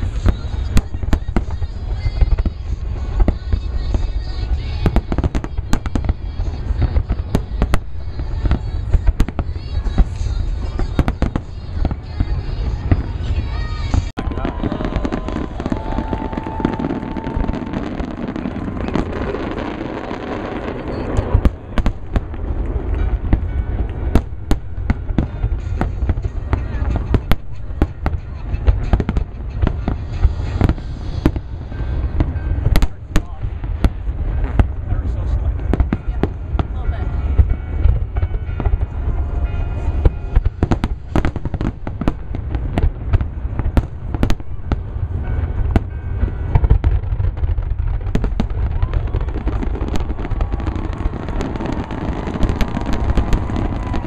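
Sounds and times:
low rumble: 0.0 - 54.0.

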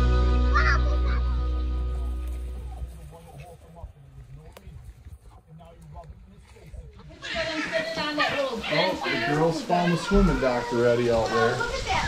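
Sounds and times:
background music: 0.0 - 3.1.

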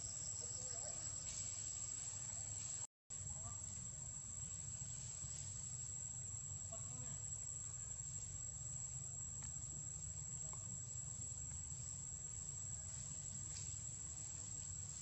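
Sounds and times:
low steady rumble: 0.2 - 15.0.

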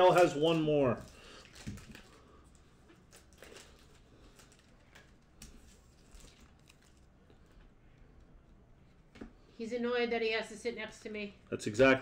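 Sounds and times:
foil pack crinkling: 0.0 - 7.2.

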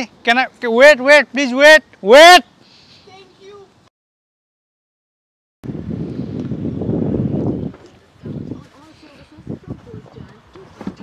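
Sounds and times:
wind buffeting microphone: 5.6 - 11.0.

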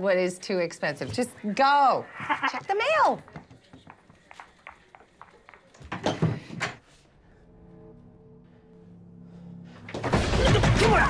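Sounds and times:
low suspense music drone: 7.1 - 11.0.

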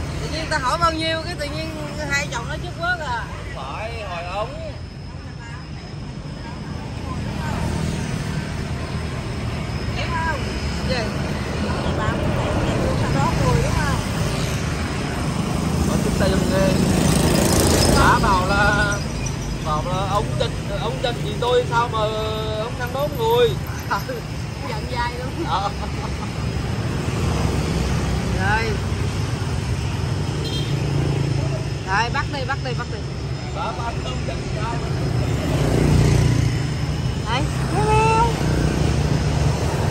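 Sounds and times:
road traffic rumble: 0.0 - 39.9
voices: 0.0 - 39.9.

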